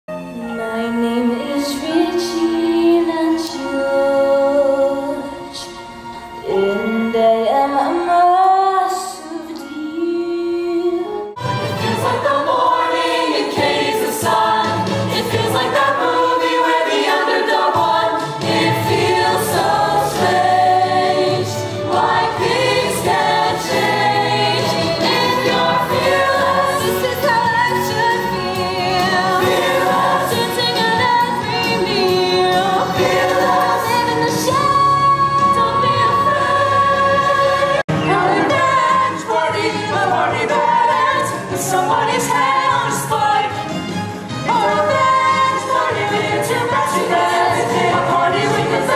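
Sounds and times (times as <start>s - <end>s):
ensemble singing show tune: 0.3s - 48.9s
instrumental accompaniment: 9.2s - 48.9s.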